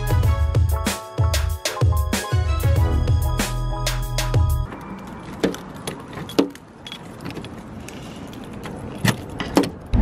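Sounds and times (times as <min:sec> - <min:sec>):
keys jangling against car door: 0:05.2 - 0:09.9.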